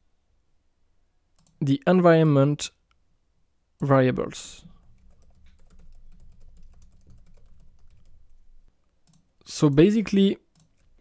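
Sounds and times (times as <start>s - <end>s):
faint low hum: 0.0s - 11.0s
typing on a keyboard: 4.8s - 8.4s, 9.0s - 9.9s, 10.5s - 11.0s.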